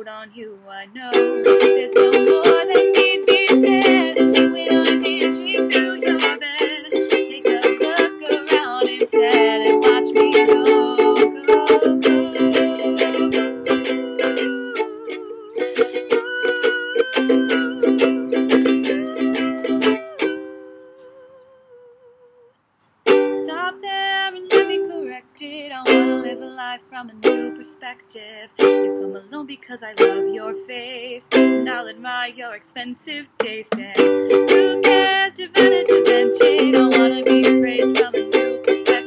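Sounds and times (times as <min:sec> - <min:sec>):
ukulele strumming chords: 0:00.9 - 0:21.8, 0:23.0 - 0:39.0.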